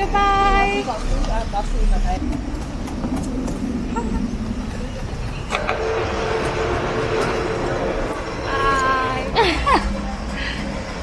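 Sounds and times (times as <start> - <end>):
motor vehicle rumbling: 0.0 - 11.0
steady hum: 0.0 - 11.0.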